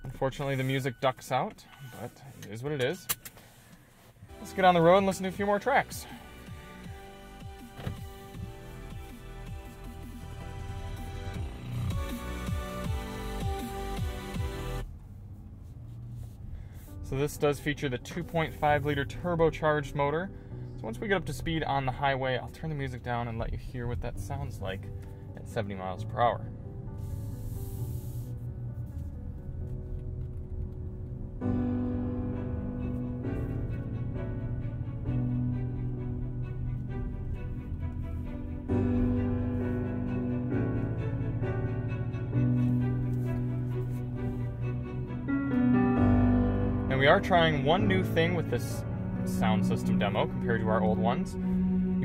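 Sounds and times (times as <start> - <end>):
electronic music in car: 0.0 - 52.0.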